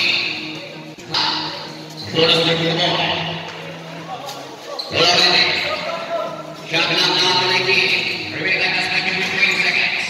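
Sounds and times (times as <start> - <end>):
voices in echoing hall: 0.0 - 10.0.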